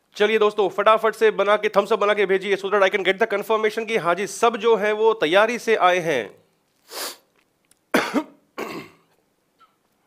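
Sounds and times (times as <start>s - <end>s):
short breath: 6.8s - 7.3s
man clearing his throat: 7.9s - 9.2s
man coughing: 7.9s - 9.2s.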